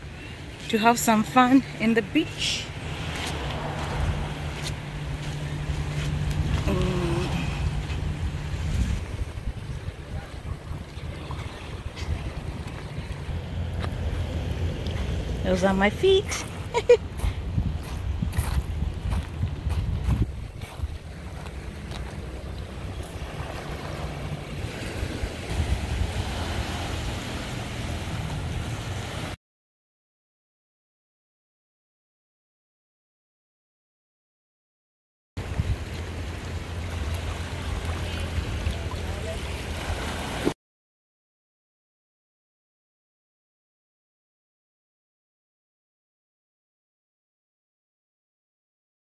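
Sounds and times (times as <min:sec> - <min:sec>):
constant low hum: 0:00.0 - 0:25.5
wind: 0:00.0 - 0:29.4, 0:35.4 - 0:40.6
small waves washing over rocks: 0:02.7 - 0:13.3, 0:20.7 - 0:29.4, 0:35.4 - 0:40.6
footsteps on coarse sand: 0:02.9 - 0:06.7, 0:13.8 - 0:14.2, 0:17.1 - 0:24.0.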